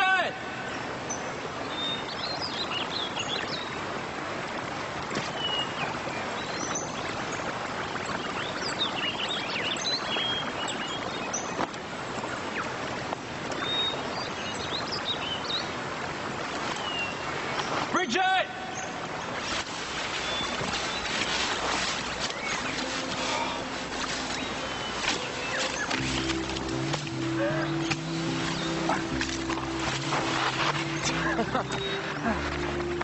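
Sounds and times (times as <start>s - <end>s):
rushing water: 0.0s - 33.0s.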